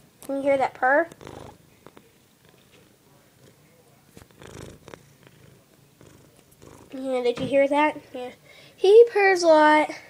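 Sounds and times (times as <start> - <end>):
cat purring: 0.5 - 7.4.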